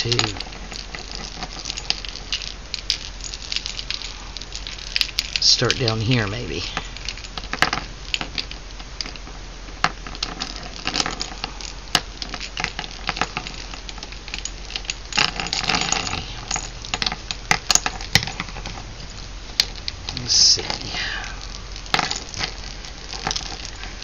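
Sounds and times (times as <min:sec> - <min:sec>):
ribbon rustling: 0:00.0 - 0:09.4, 0:10.0 - 0:24.0
jingle bells and beads clinking: 0:00.0 - 0:24.0.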